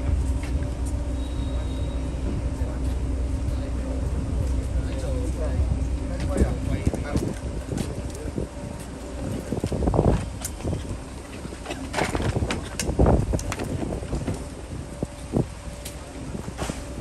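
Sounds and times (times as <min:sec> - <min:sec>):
coach engine rumbling: 0:00.0 - 0:17.0
knocks and scuffs of people walking: 0:00.0 - 0:17.0.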